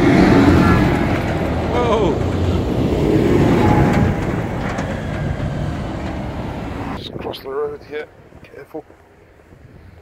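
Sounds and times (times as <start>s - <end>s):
tractor engine and tyre rumble: 0.0s - 10.0s
man's voice: 1.7s - 2.3s.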